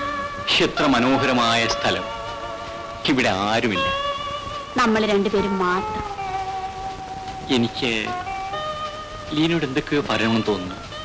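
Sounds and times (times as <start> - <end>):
soft background music: 0.0 - 11.0
person speaking: 0.5 - 2.2.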